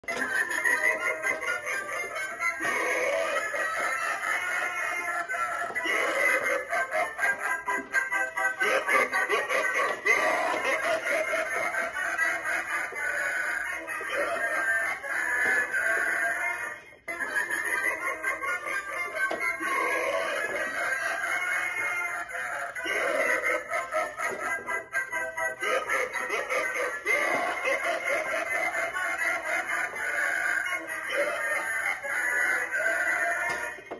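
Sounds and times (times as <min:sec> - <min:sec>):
animatronic toy music: 0:00.0 - 0:33.9.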